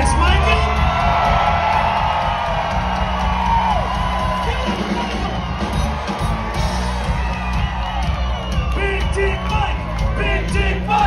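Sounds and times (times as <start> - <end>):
audience cheering and whooping: 0.0 - 11.0
live rock band playing: 0.0 - 11.0.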